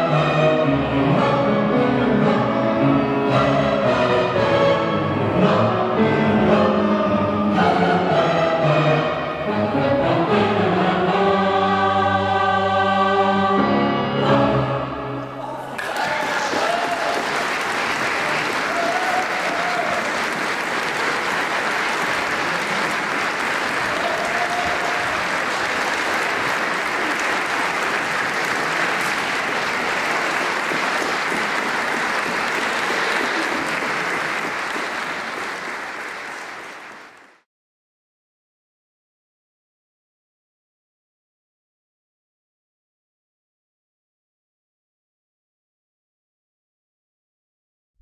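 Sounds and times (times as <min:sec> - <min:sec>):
audience applauding: 0:15.8 - 0:37.4.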